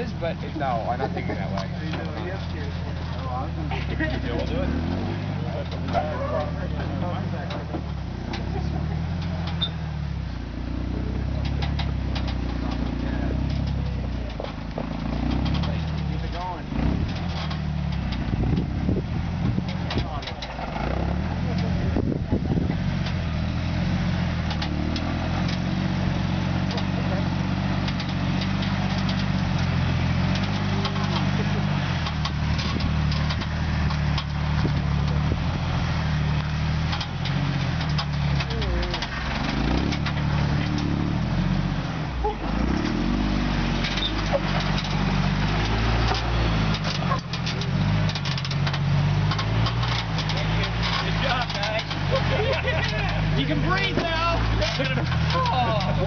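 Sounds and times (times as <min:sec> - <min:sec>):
off-road vehicle engine at low speed: 0:00.0 - 0:56.0.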